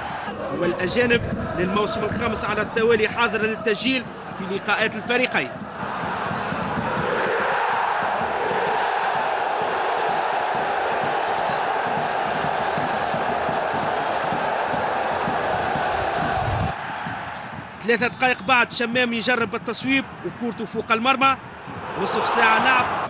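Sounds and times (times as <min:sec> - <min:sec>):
crowd chanting and cheering: 0:00.0 - 0:23.0
quiet stadium background: 0:00.0 - 0:23.0
bass drum beating: 0:03.9 - 0:17.8, 0:21.4 - 0:22.0.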